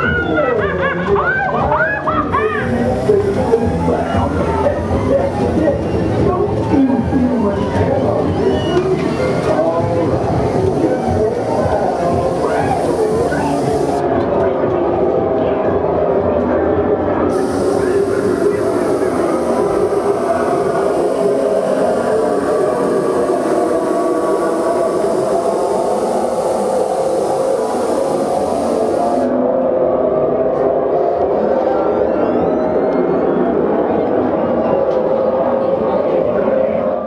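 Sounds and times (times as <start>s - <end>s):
music: 0.0s - 24.0s
voices: 0.0s - 37.0s
high hiss: 9.0s - 14.0s, 17.3s - 29.3s.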